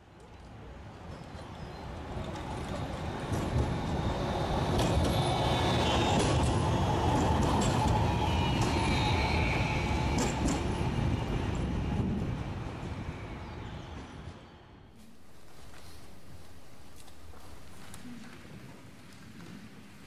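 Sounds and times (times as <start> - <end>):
tram rumbling past: 0.8 - 20.0
wheel squeal from rails: 4.6 - 11.2.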